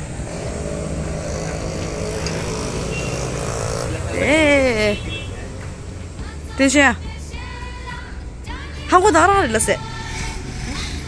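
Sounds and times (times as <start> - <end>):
road noise: 0.0 - 11.0
vehicle engine hum: 0.0 - 11.0.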